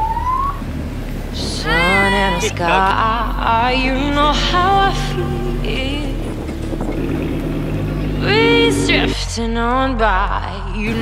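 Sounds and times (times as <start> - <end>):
car engine running: 0.0 - 9.4.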